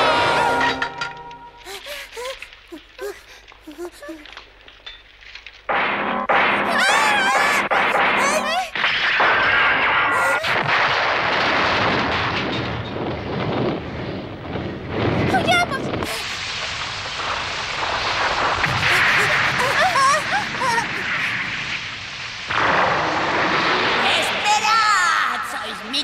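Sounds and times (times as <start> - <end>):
cartoon fire burning: 1.6 - 25.8
explosive rumbles: 1.6 - 25.9
high wavering voice crying out: 1.7 - 4.3, 6.7 - 8.8, 10.1 - 10.6.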